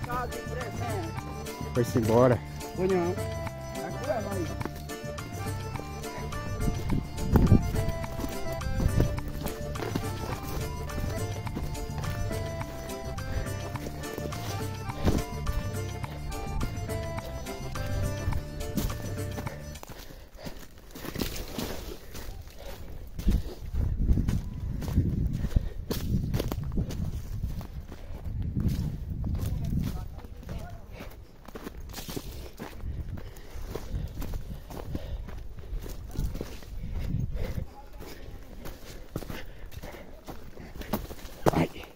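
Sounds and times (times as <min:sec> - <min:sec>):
music with steady beat: 0:00.0 - 0:19.9
horse hooves thudding: 0:00.0 - 0:37.9, 0:38.5 - 0:41.9.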